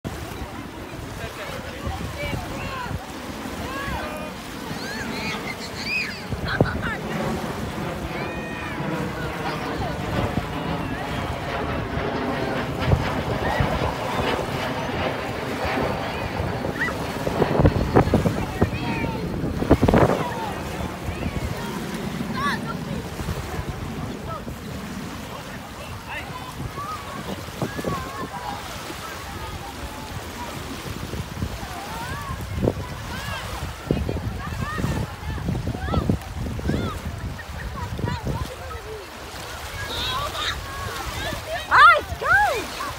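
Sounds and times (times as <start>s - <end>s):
small waves washing ashore: 0.0s - 42.9s
wind buffeting microphone: 0.0s - 42.9s.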